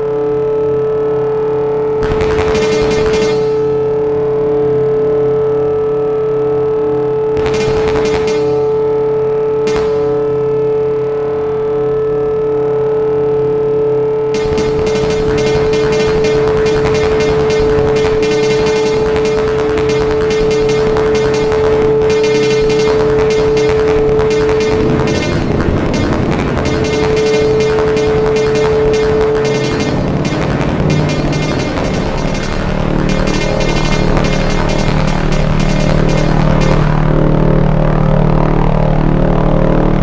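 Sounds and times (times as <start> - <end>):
low synthesizer drones: 0.0 - 40.0
rapid electronic crackling: 1.6 - 4.5, 7.2 - 12.0, 14.3 - 40.0
held synthesizer tone: 1.7 - 4.5, 7.4 - 11.4, 14.2 - 37.5.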